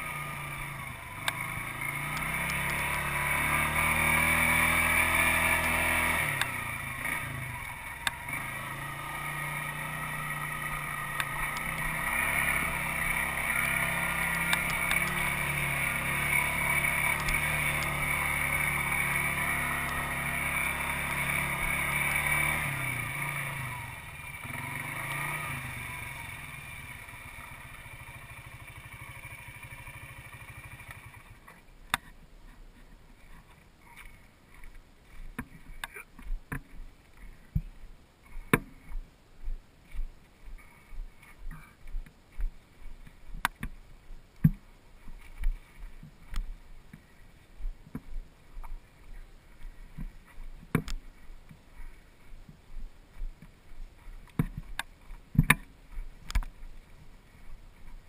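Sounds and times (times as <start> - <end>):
atv engine running: 0.0 - 58.0.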